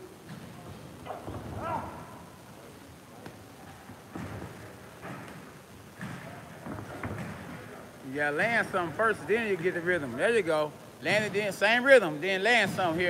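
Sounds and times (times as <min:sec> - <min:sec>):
footwork on ring canvas: 0:00.0 - 0:10.3
gym room noise: 0:00.0 - 0:13.0.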